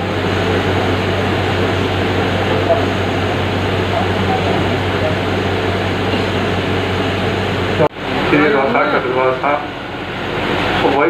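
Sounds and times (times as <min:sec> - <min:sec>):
low hum: 0:00.0 - 0:11.0
rushing background noise: 0:00.0 - 0:11.0.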